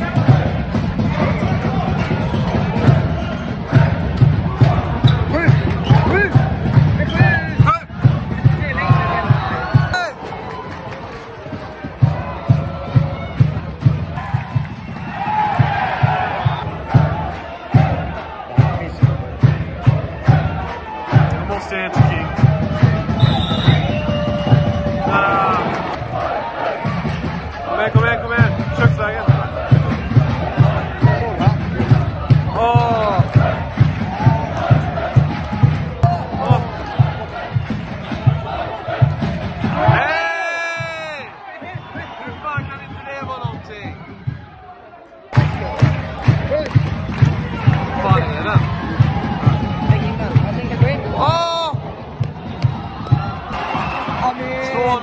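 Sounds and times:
crowd chanting: 0:00.0 - 0:55.0
drum beating steady rhythm: 0:00.0 - 0:55.0.

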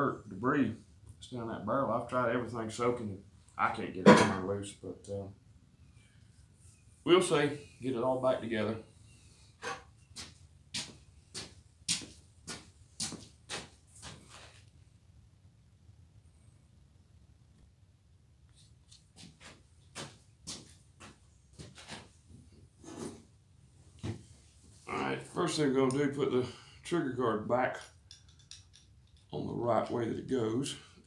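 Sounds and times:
footsteps on workshop floor: 0:10.1 - 0:14.6, 0:19.1 - 0:22.2.

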